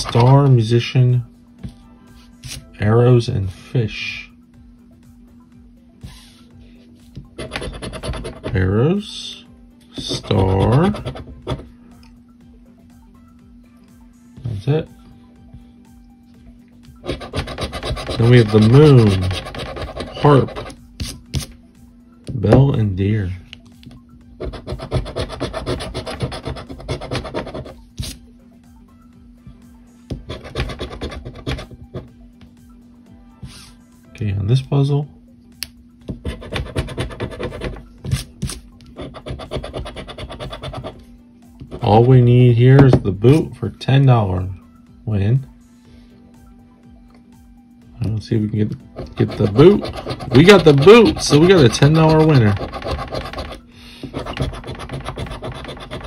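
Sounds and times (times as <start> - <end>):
steady low hum: 0.0 - 56.0
coin scraping lottery ticket: 17.1 - 20.7, 49.0 - 56.0.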